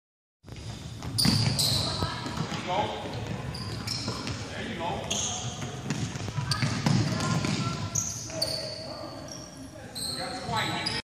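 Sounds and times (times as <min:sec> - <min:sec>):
basketballs bouncing on hardwood floor: 0:00.5 - 0:08.4
short high squeaks: 0:07.9 - 0:11.0.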